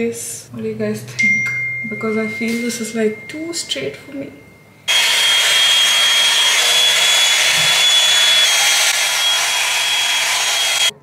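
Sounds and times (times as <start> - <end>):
hot-air brush fan running: 4.9 - 11.0.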